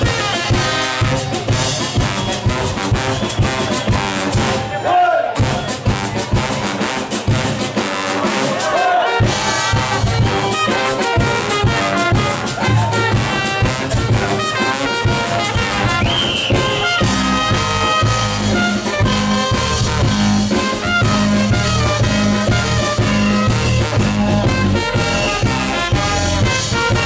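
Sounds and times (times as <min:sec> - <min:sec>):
drums: 0:00.0 - 0:27.0
horn section playing ska tune: 0:00.0 - 0:27.0
electric bass line: 0:11.2 - 0:27.0.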